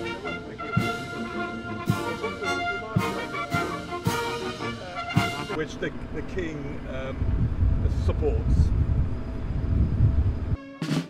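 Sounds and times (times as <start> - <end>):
military brass and drum band: 0.0 - 5.9, 10.6 - 11.0
loud low rumble: 4.8 - 10.6.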